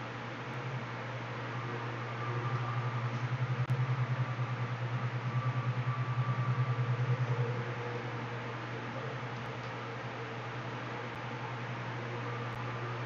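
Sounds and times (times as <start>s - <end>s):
low pulsing mechanical hum: 0.0s - 13.0s.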